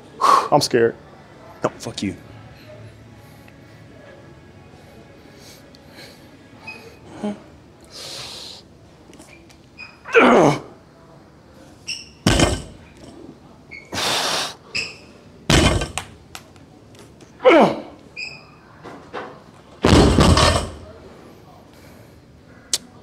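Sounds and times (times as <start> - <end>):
barbell thudding on wooden platform: 12.2 - 12.9, 15.5 - 16.1, 19.8 - 20.9.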